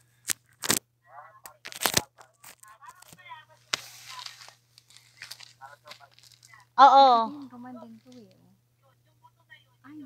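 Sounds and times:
phone handling crackles: 1.5s - 6.6s.

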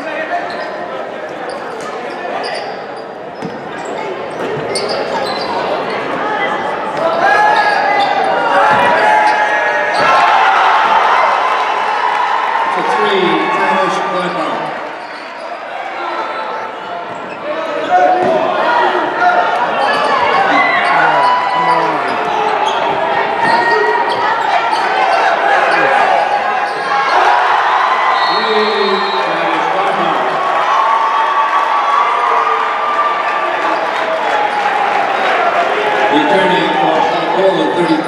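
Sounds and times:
crowd chatter: 0.0s - 38.0s
sneakers squeaking: 0.3s - 10.2s, 14.2s - 15.8s, 16.5s - 18.6s, 19.5s - 27.3s.

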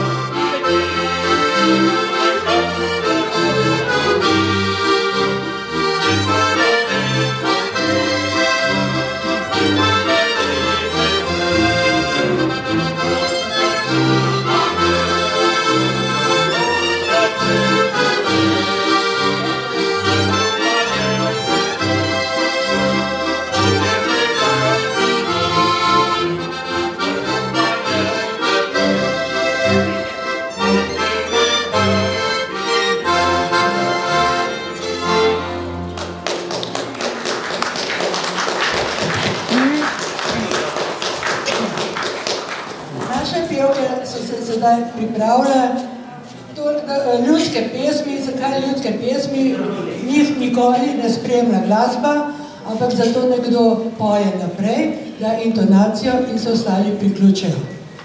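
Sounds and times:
double bass beat: 0.0s - 36.2s
lively folk band tune: 0.0s - 58.0s
people clapping: 35.8s - 43.9s.

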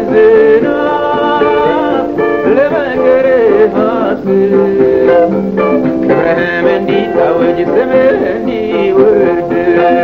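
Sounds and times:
instrumental backing: 0.0s - 10.0s
man singing: 0.0s - 10.0s.

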